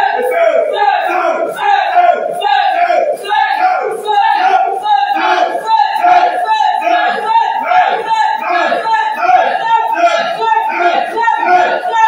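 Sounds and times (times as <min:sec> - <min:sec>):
voices shouting prayer: 0:00.0 - 0:12.0.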